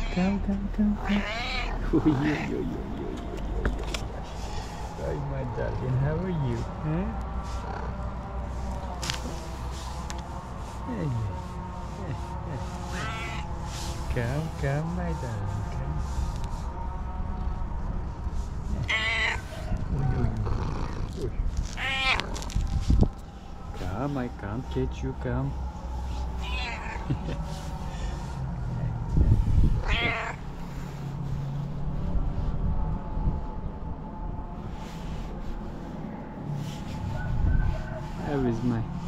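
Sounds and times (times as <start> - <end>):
cat meowing high-pitched: 1.0 - 2.5, 21.8 - 22.2, 26.4 - 27.1, 29.8 - 30.4.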